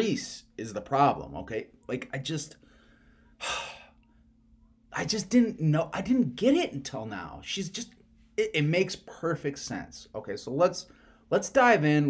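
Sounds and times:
man sighing: 3.4 - 4.0.

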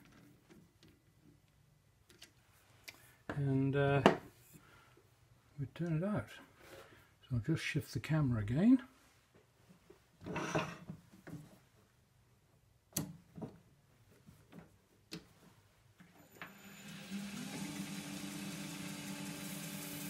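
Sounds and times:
wood lathe motor hum: 16.3 - 20.0.

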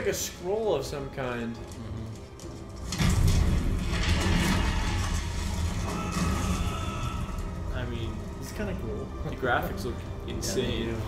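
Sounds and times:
music with deep rumble: 0.0 - 11.0.

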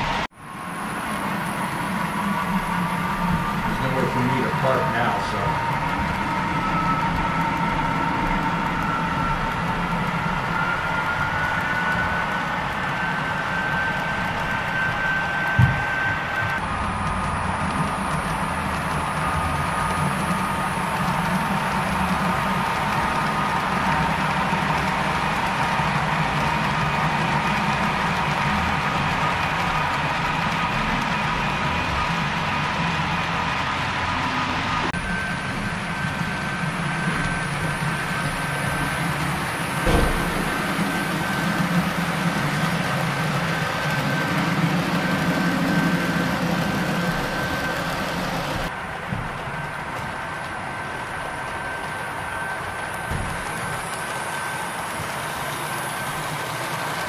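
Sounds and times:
model train humming and whining: 0.0 - 57.0
single knock: 39.8 - 40.5.

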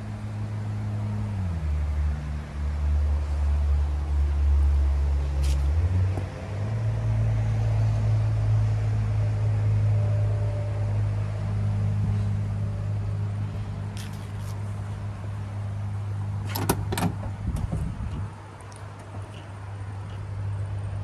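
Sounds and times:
engine idling hum: 0.0 - 21.0
car door handle and latch clicks: 16.5 - 17.7.

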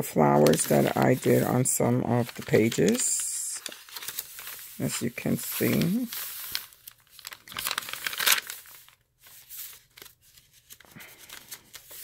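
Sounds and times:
paper pages rustling: 0.2 - 12.0.

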